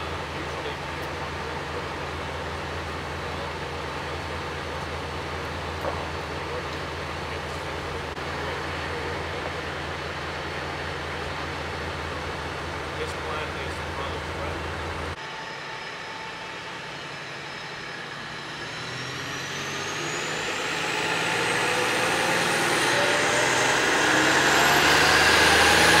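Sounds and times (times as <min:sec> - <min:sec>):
faint rising whine: 0:00.0 - 0:26.0
heavy vehicle engine and road noise: 0:00.0 - 0:26.0
low hum: 0:00.0 - 0:26.0.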